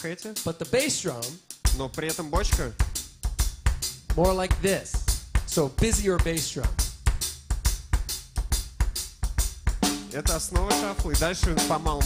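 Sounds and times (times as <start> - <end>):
drum kit shuffle groove: 0.0 - 12.0.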